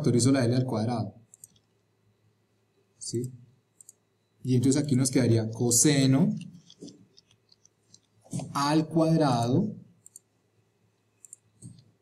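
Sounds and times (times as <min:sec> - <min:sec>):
faint clicks: 0:01.3 - 0:01.8, 0:03.2 - 0:04.0, 0:06.4 - 0:08.2, 0:10.0 - 0:10.3, 0:11.0 - 0:12.0
person speaking: 0:08.3 - 0:09.8.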